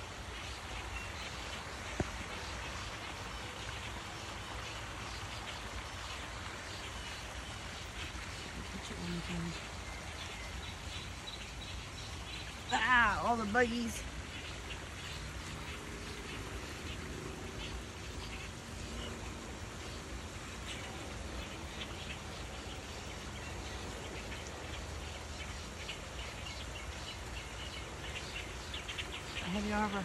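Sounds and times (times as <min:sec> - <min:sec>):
steady hiss: 0:00.0 - 0:30.0.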